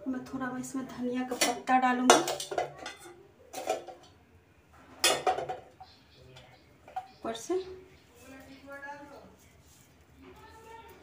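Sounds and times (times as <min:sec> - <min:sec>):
steel kitchenware clattering: 0:01.2 - 0:04.1, 0:05.0 - 0:07.2.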